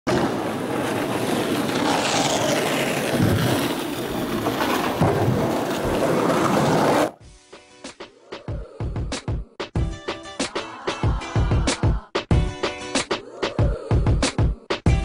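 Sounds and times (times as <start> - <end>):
music track with regular beat: 7.2 - 15.0.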